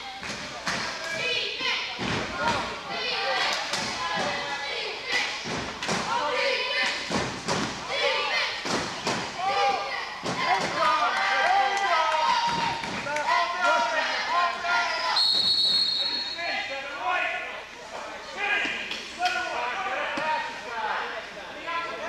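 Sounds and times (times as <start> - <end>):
people shouting: 7.8 - 15.2.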